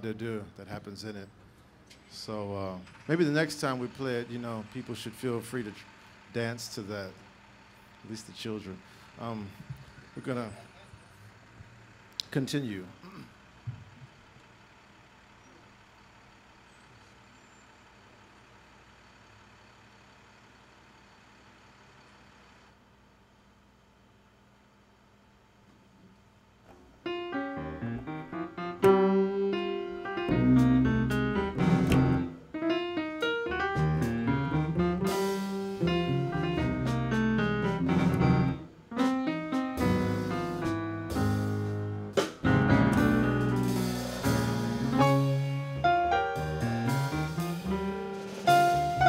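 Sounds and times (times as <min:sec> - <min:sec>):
jazz grand piano chords: 0:27.0 - 0:49.0
low hum: 0:27.2 - 0:32.6.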